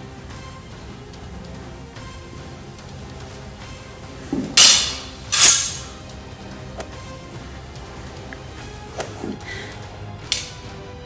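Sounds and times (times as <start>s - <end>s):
background music: 0.0s - 11.0s
stage weapons clashing: 4.3s - 6.0s.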